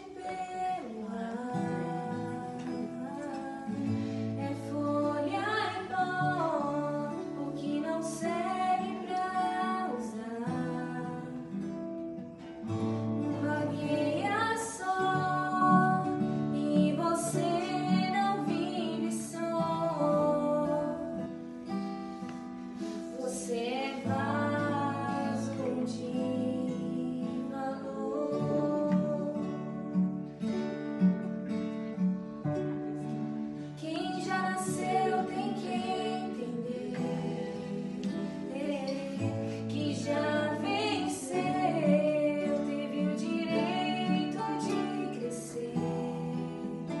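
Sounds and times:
woman singing a hymn: 0.0 - 11.7, 13.2 - 21.5, 22.8 - 30.0, 33.7 - 47.0
acoustic guitars: 0.0 - 47.0.

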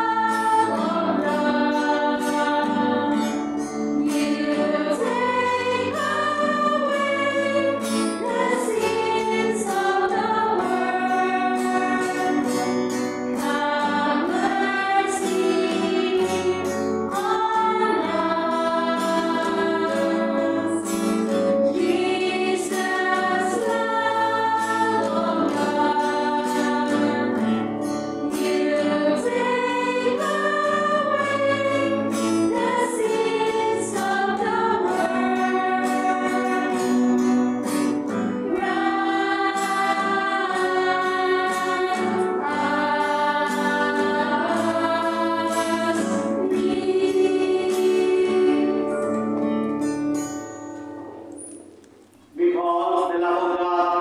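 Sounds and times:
choir singing a hymn: 0.0 - 49.3
faint instrumental accompaniment: 0.0 - 54.0.

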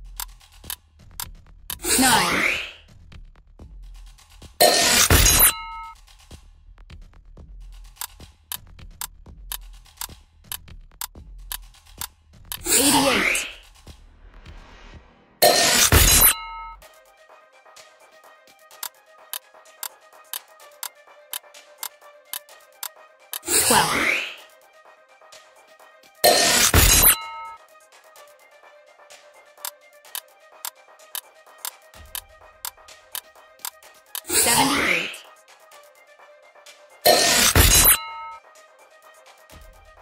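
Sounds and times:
background music: 0.0 - 40.0
ticking countdown: 7.7 - 13.9, 18.7 - 23.9, 29.6 - 35.0.

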